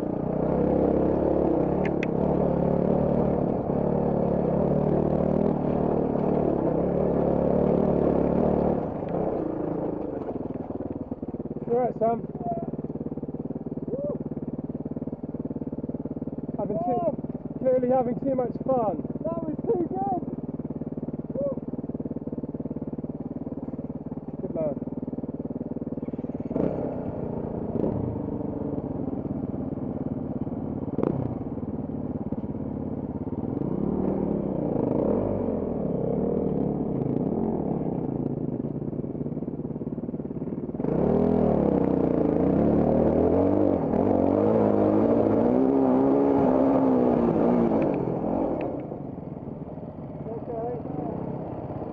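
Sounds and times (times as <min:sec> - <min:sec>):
motorcycle engine revving: 0:00.0 - 0:51.9.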